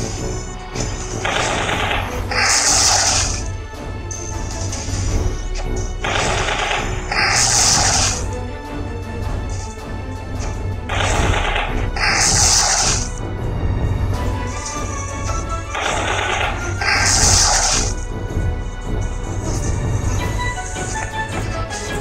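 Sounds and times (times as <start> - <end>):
game background music: 0.0 - 22.0.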